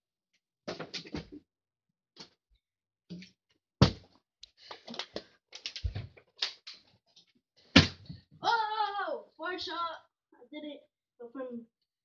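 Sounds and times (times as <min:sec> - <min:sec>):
bottle landing thuds: 0:03.8 - 0:04.1, 0:07.7 - 0:08.2
plastic water bottle clattering: 0:03.8 - 0:06.5.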